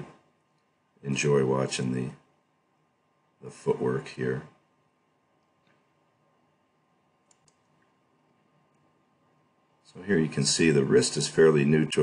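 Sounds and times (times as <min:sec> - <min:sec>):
faint clicks: 0:07.2 - 0:08.9.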